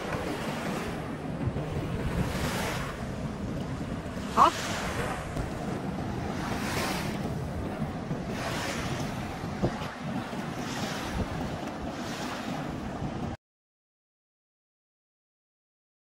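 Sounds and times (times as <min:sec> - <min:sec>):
waves washing on sandy bank: 0:00.0 - 0:13.4
wind rumbling on microphone: 0:00.0 - 0:13.4.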